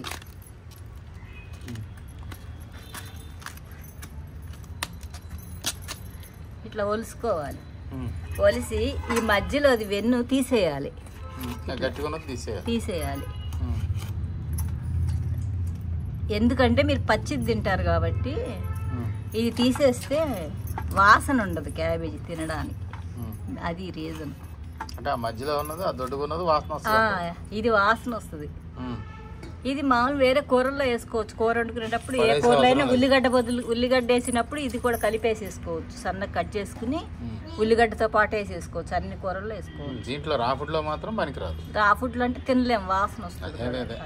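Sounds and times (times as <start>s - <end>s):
metal bangles jingling: 0.0s - 28.8s, 30.1s - 37.2s
woman speaking: 29.7s - 39.6s.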